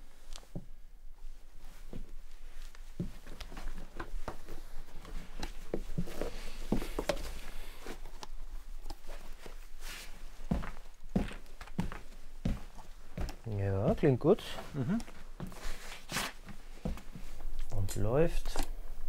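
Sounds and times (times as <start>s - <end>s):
shoes knocking on wooden floor: 10.5s - 13.6s.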